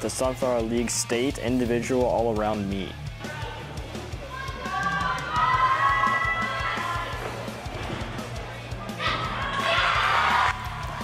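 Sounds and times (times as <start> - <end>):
background music with bass: 0.0 - 11.0
spectators cheering and shouting: 3.2 - 11.0.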